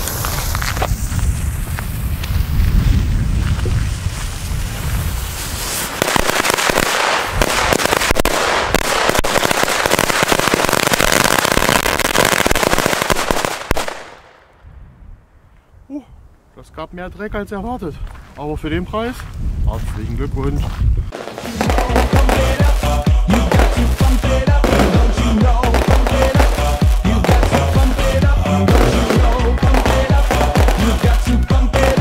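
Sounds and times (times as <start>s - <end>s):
firecracker string bangs: 23.5s - 31.2s.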